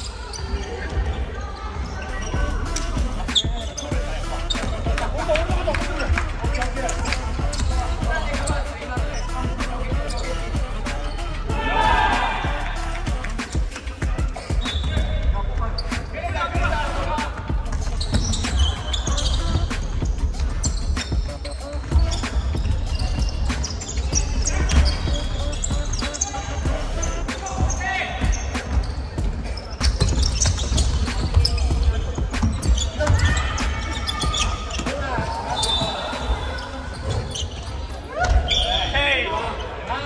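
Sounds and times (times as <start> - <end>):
players' voices: 0.0 - 40.0.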